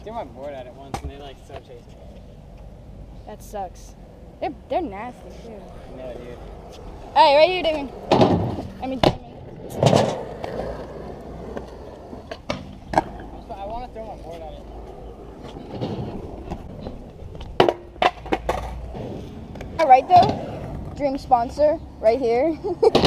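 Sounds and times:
skateboard wheels rolling on concrete: 0.0 - 23.0
skateboard clacking on ground: 5.1 - 21.6.

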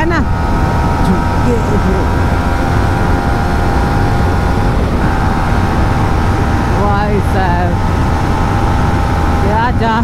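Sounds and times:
motorcycle engine running hard: 0.0 - 10.0
wind rush on microphone: 0.0 - 10.0.

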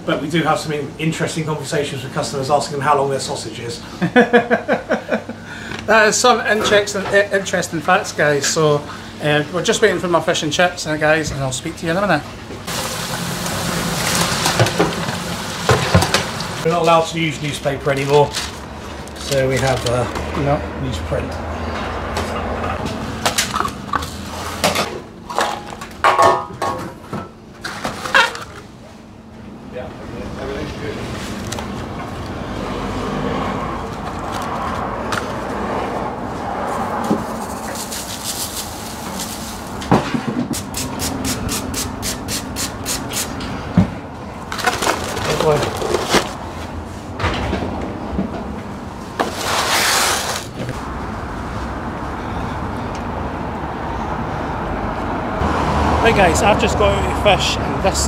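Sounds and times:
kitchen background noise: 5.8 - 29.0, 30.4 - 51.0
oil sizzling in deep fryer: 12.7 - 16.7
condiment shaker shaking: 37.2 - 39.7, 40.6 - 43.4.

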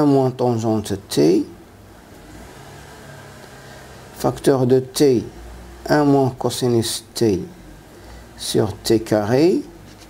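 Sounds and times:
faint noise: 0.0 - 10.0.

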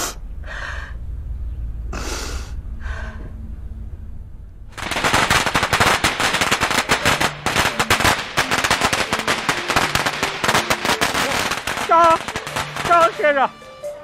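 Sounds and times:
firecrackers crackling: 4.7 - 13.6.

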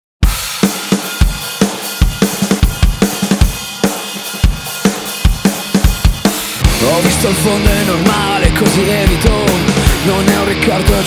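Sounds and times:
drum kit playing beat: 0.2 - 11.0.

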